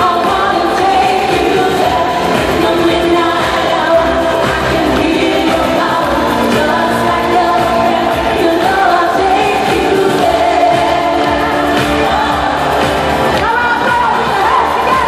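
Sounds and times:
loud amplified backing music: 0:00.0 - 0:15.0
woman singing: 0:00.0 - 0:15.0.

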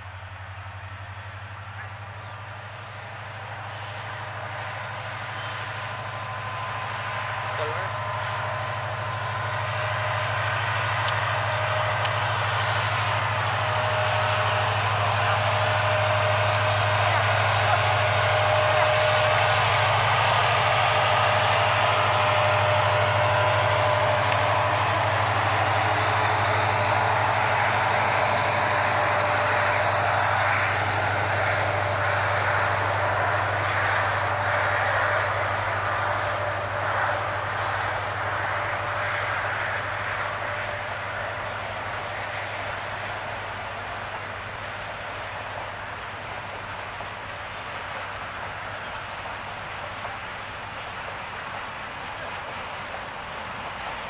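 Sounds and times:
freight train wheels rumbling: 0:00.0 - 0:54.0.

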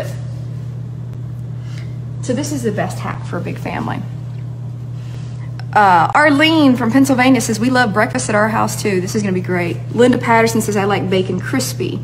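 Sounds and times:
oven humming: 0:00.0 - 0:12.0.

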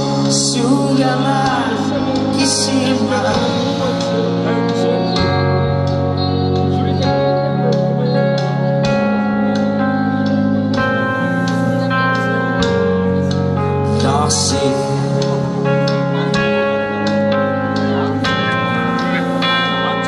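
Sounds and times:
bass guitar: 0:00.0 - 0:20.0
drums: 0:00.0 - 0:20.0
electric guitar: 0:00.0 - 0:20.0.

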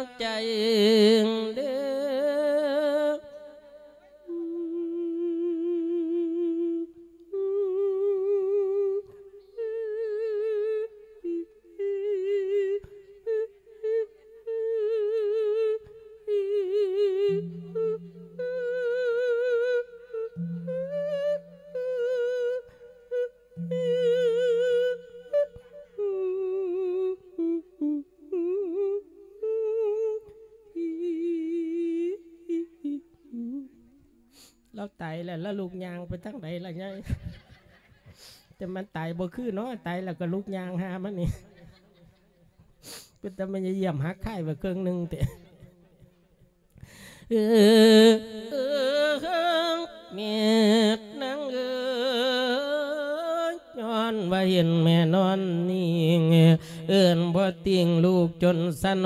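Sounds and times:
man chanting into a microphone: 0:00.0 - 0:06.8, 0:34.8 - 0:37.3, 0:38.6 - 0:41.6, 0:43.2 - 0:45.6, 0:47.3 - 0:59.0.

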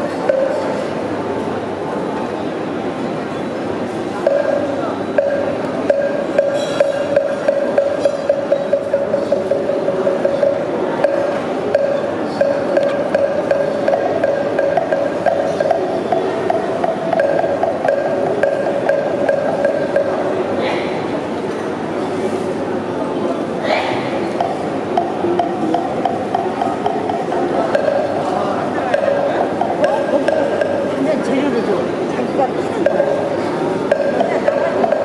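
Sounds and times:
even knocking beat: 0:04.2 - 0:20.3, 0:24.3 - 0:31.3, 0:32.8 - 0:35.0.

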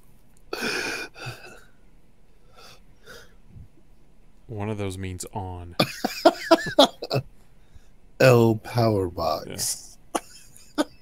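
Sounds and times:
man laughing: 0:05.8 - 0:07.2, 0:10.1 - 0:11.0.

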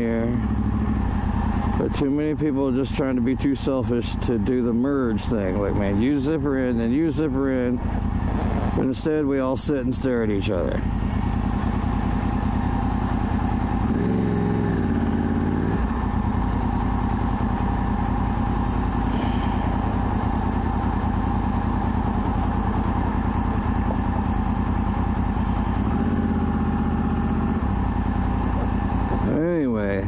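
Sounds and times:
motorcycle engine running: 0:00.0 - 0:30.0.

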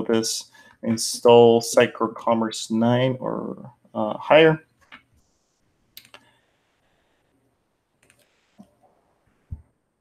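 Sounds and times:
mouse and keyboard clicks: 0:08.0 - 0:08.7.

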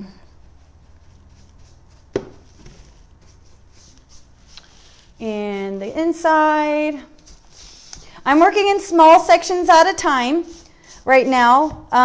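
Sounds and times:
paintbrush strokes on wood: 0:00.0 - 0:12.0.

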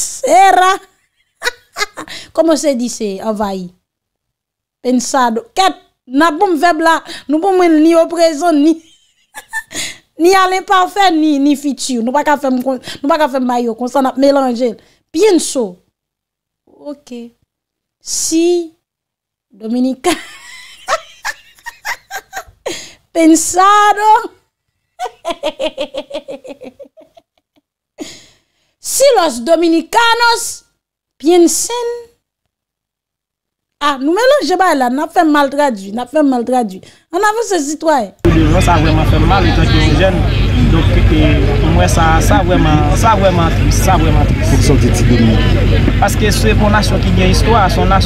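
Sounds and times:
woman laughing: 0:01.2 - 0:02.2, 0:08.7 - 0:10.0, 0:20.1 - 0:22.8, 0:25.0 - 0:27.6
low hum: 0:38.3 - 0:48.0
person speaking: 0:38.3 - 0:48.0.

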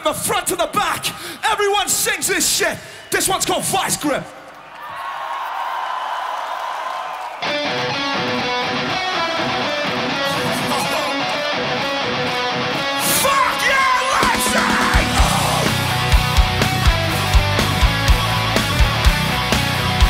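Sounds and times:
crowd noise: 0:02.2 - 0:20.0
metal band playing: 0:07.4 - 0:20.0
person yelling over music: 0:10.3 - 0:11.4, 0:13.0 - 0:16.9.

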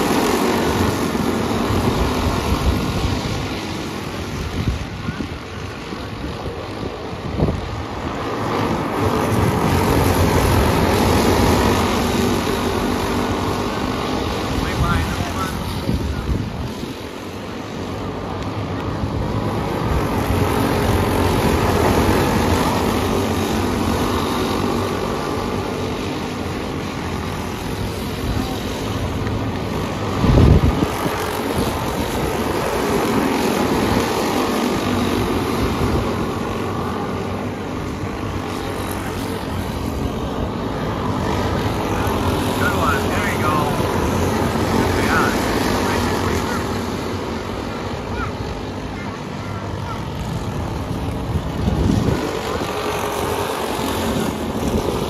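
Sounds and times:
kart engines buzzing: 0:00.0 - 0:55.0.

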